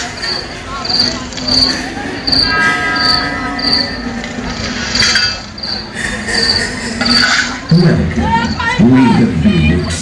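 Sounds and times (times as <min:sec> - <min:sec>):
cricket chirping: 0:00.0 - 0:04.0, 0:04.9 - 0:08.8
fairground din: 0:00.0 - 0:10.0.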